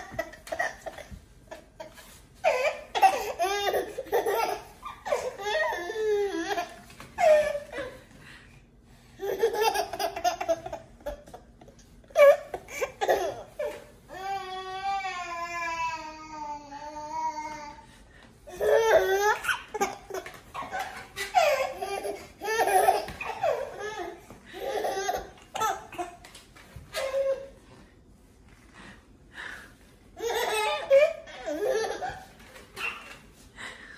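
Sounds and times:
baby laughing: 0.0 - 8.0, 9.2 - 11.5, 12.1 - 13.8, 18.5 - 26.2, 30.2 - 33.2.

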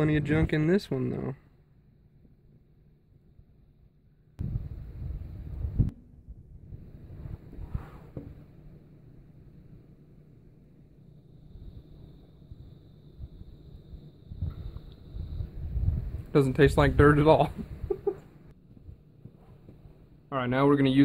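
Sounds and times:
wind rumbling on microphone: 4.4 - 8.7, 11.4 - 18.1.

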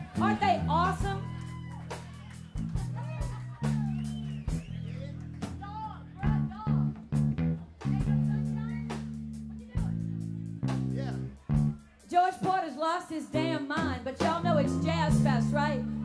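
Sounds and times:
bass guitar low notes: 0.0 - 12.0, 13.3 - 16.0
jazz-funk band playing: 0.0 - 16.0.

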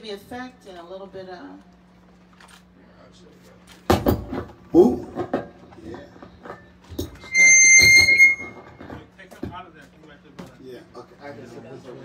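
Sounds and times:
microphone feedback squeal: 7.2 - 8.8.

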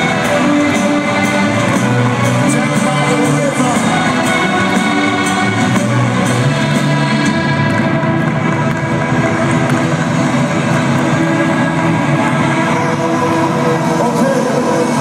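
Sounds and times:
rock band playing live: 0.0 - 15.0.

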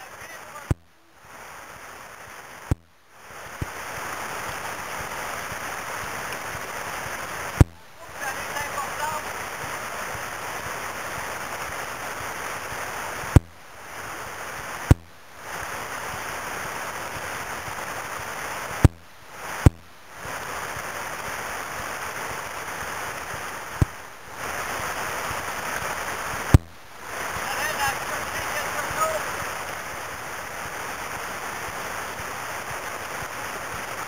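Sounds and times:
river rapids rushing: 3.2 - 13.3, 20.3 - 34.0.

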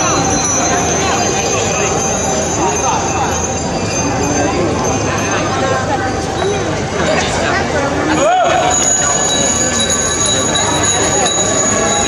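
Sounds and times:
bicycles passing: 0.0 - 12.0
voices talking and calling out: 0.0 - 12.0.

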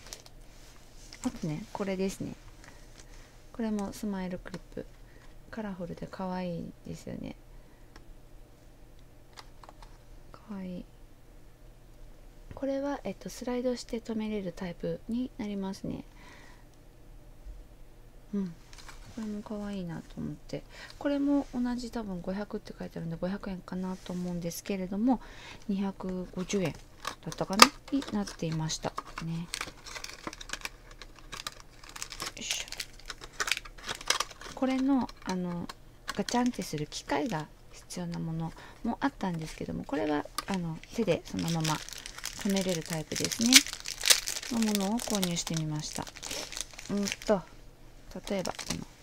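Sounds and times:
plastic blister pack clicking: 26.6 - 36.6, 41.4 - 47.2.

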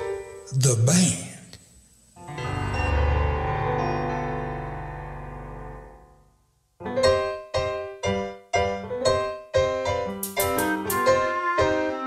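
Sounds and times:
held keyboard chord: 6.8 - 12.0
keyboard bouncy rhythm of chords: 6.8 - 12.0.

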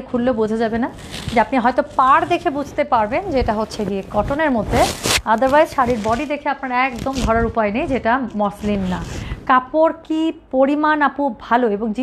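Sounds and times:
woman talking: 0.0 - 12.0
fabric swishing: 0.8 - 9.6.

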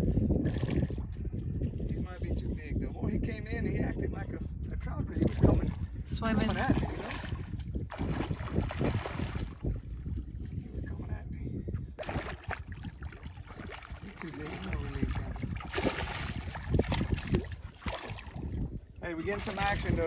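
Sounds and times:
wind buffeting microphone: 0.0 - 20.0
water splashing: 5.2 - 9.8, 12.0 - 18.7.

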